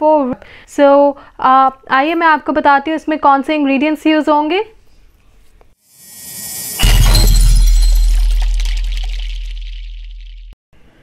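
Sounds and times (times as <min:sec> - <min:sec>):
glassy shimmer: 0:06.0 - 0:10.4
deep boom: 0:06.2 - 0:10.5.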